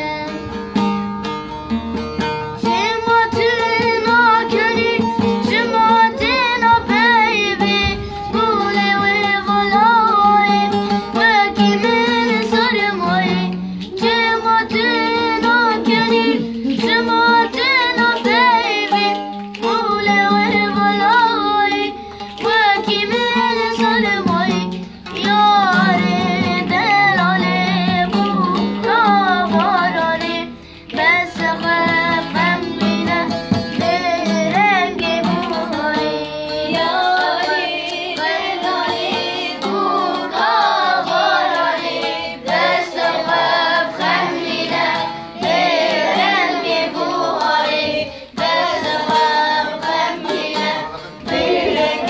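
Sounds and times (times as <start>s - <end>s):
boy singing: 0.0s - 0.6s, 2.6s - 52.0s
lute strumming: 0.0s - 52.0s
children clapping: 11.6s - 35.9s, 36.7s - 48.0s, 48.6s - 52.0s.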